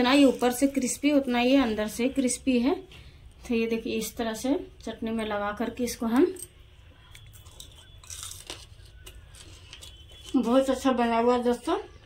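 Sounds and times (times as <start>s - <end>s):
crunchy fried snack being chewed: 7.0s - 10.8s.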